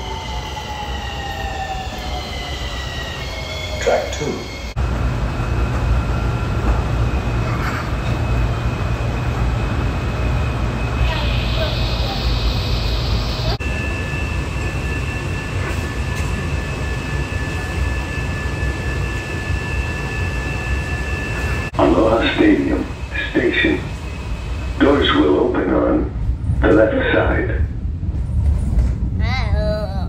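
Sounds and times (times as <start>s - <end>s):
train interior rumble: 0.0s - 30.0s.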